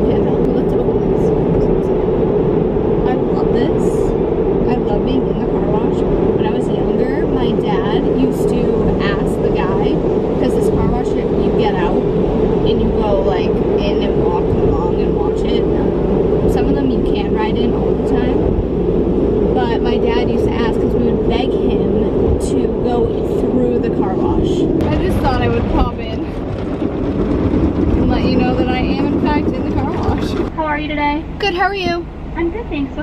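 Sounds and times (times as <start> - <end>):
woman talking: 0.0 - 1.9, 3.0 - 12.0, 12.6 - 18.5, 19.5 - 26.4, 27.9 - 33.0.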